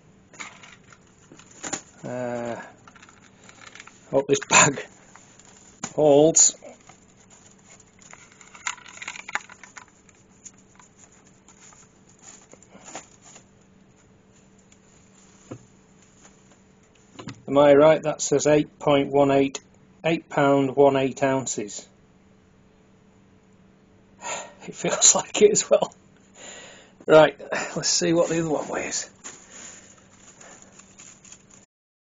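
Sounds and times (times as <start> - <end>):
bag rustling: 6.6 - 16.5, 27.8 - 31.6.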